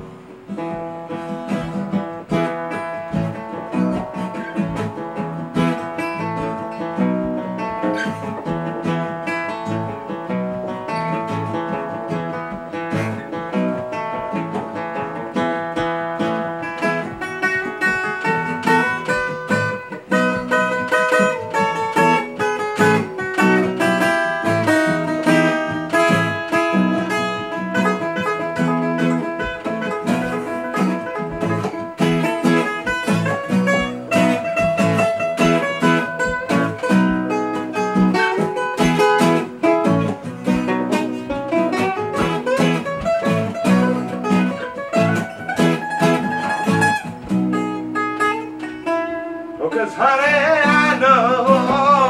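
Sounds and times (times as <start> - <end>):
acoustic guitar strumming: 0.0 - 52.0
plucked string melody: 0.0 - 52.0.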